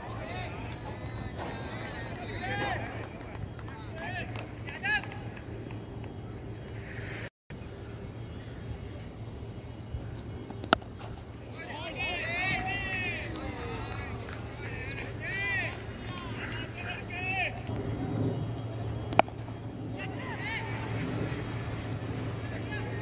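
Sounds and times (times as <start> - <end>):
players shouting calls: 0.0 - 6.2, 11.4 - 17.7, 18.6 - 23.0.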